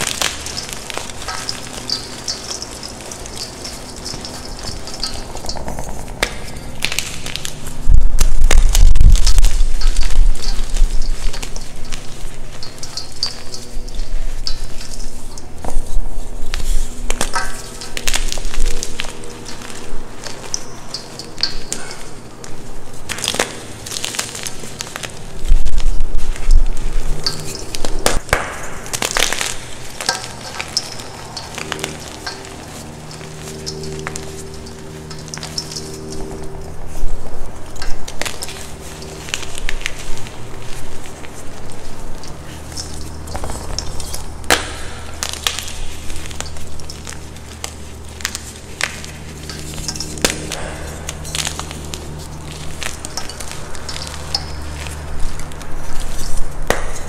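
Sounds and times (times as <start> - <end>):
hands crushing chalk: 37.8 - 57.0.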